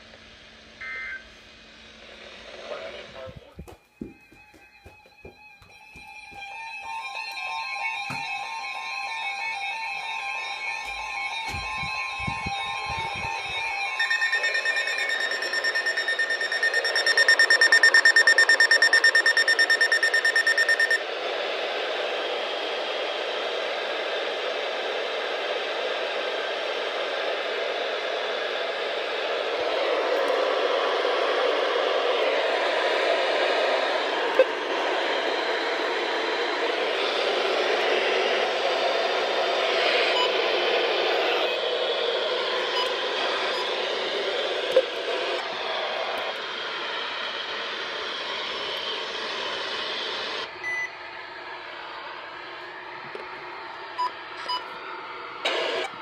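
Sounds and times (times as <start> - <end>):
radio static hiss: 0.0 - 4.8, 10.2 - 50.5, 55.4 - 56.0
pulsing high alarm beep: 6.1 - 21.0.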